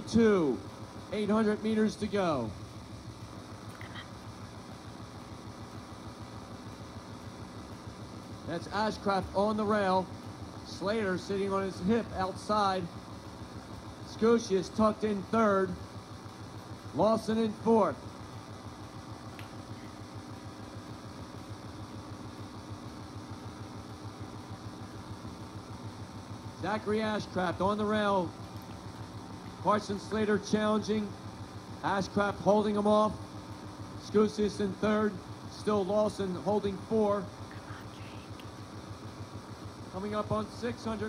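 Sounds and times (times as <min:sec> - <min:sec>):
low background hum: 0:00.0 - 0:41.0.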